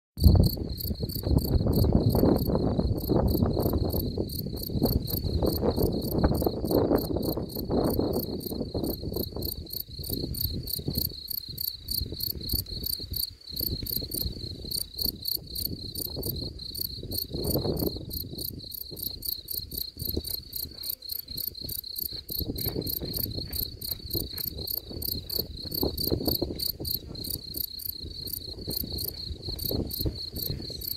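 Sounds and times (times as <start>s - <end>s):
cricket chirping: 0.2s - 30.9s.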